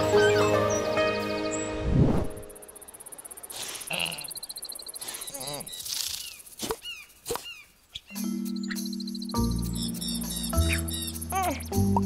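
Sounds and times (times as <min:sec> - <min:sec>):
insects trilling: 0:02.5 - 0:12.0.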